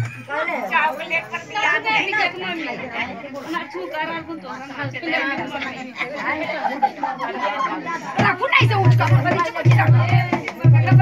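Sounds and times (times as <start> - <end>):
women chattering: 0.0 - 11.0.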